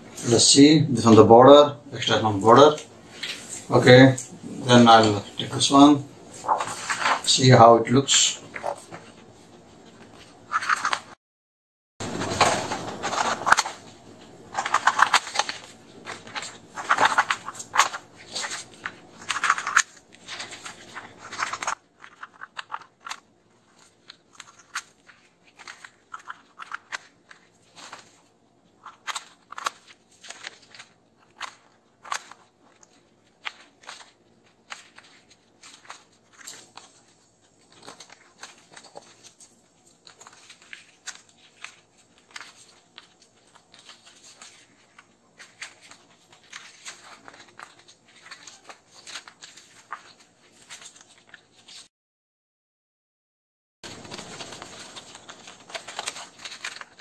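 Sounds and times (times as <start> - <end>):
paper crackling: 2.5 - 11.2, 12.0 - 51.9, 53.8 - 57.0
scissors snipping paper: 14.5 - 28.2, 53.9 - 57.0.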